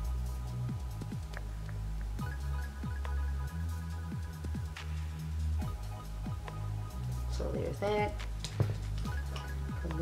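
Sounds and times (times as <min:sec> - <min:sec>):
deep bass notes: 0:00.0 - 0:10.0.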